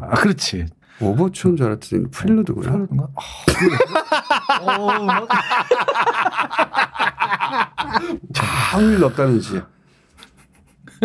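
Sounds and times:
men talking: 0.0 - 9.7
men laughing: 3.4 - 9.1.

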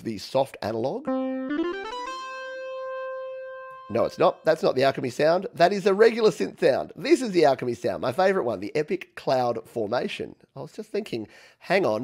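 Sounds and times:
rising run of synth notes: 1.1 - 4.5
synth note ringing: 1.1 - 5.0.

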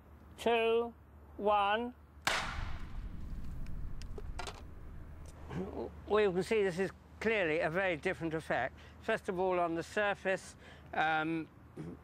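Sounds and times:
sharp explosive bang: 2.3 - 5.4
lingering low rumble: 2.4 - 5.5.

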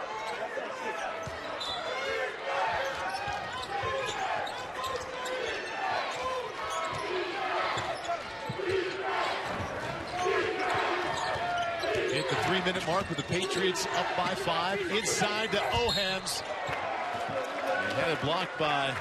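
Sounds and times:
players and crowd shouting: 0.0 - 19.0.

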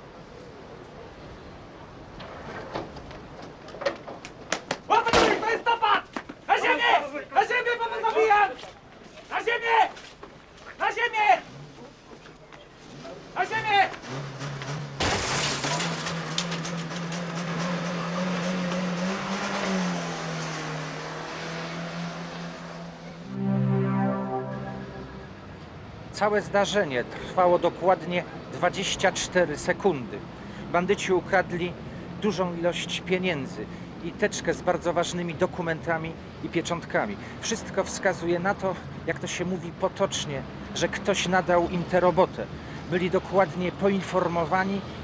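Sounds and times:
dramatic music drone: 23.2 - 25.9.

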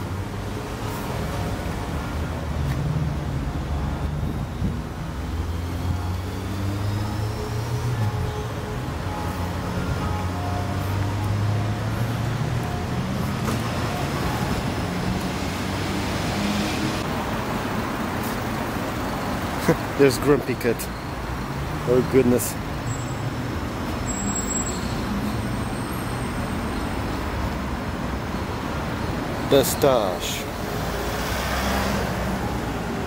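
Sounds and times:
road traffic and engine hum: 0.0 - 33.0.

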